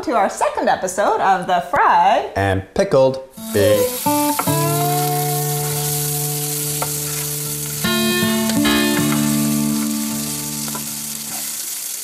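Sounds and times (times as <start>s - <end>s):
food sizzling in hot oil: 3.3s - 12.0s
held musical notes: 3.4s - 11.5s.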